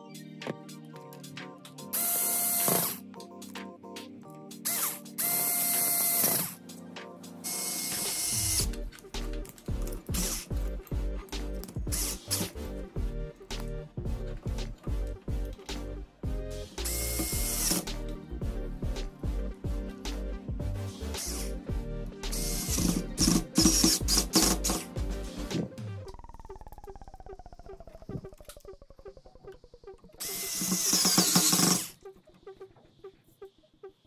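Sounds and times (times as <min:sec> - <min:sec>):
electric screwdriver motor whining: 0:01.9 - 0:03.0, 0:04.7 - 0:06.6, 0:07.5 - 0:08.8, 0:11.9 - 0:12.5, 0:16.8 - 0:17.9, 0:22.3 - 0:24.8, 0:30.2 - 0:32.0.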